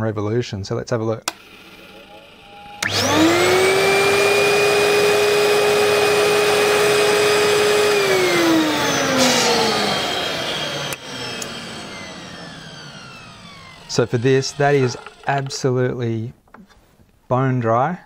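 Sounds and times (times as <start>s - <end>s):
clicks: 1.2s - 1.5s, 10.8s - 11.7s, 13.4s - 15.7s
vacuum motor whining: 1.3s - 15.8s.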